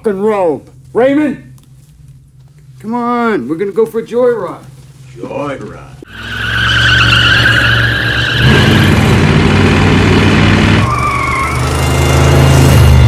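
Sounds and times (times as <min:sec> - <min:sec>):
tyres squealing: 0:06.1 - 0:09.1, 0:10.8 - 0:12.2
car engine revving hard: 0:06.1 - 0:13.0.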